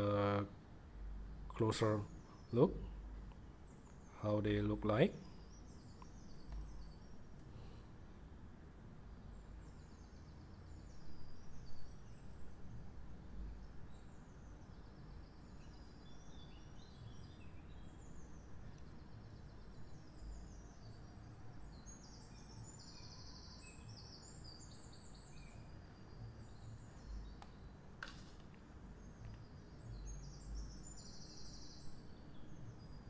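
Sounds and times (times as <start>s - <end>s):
low steady ambient hum: 0.0s - 33.0s
birds chirping and trilling: 1.5s - 8.0s, 9.2s - 33.0s.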